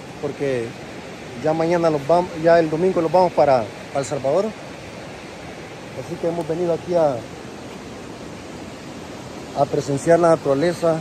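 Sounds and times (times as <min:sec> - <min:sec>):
river rushing over stones: 0:00.0 - 0:11.0.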